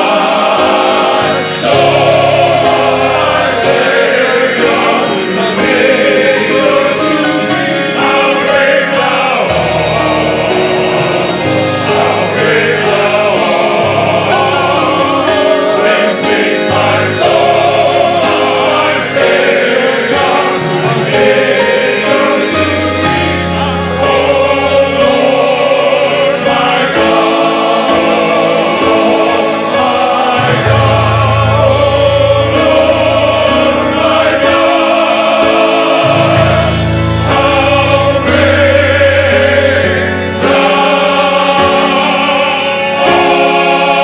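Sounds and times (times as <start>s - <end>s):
men's chorus singing a hymn: 0.0s - 44.0s.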